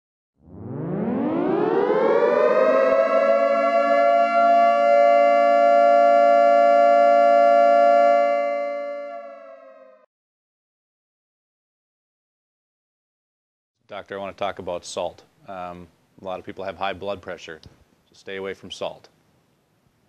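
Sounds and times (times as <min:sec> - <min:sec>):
air-raid siren wailing: 0:00.4 - 0:10.1.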